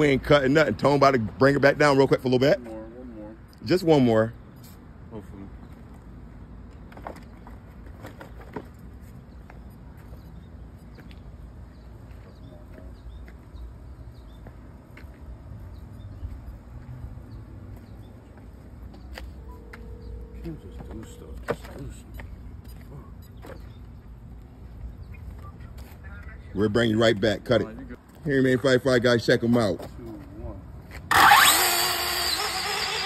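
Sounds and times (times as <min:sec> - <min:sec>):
steady beep tone: 0:19.4 - 0:22.2.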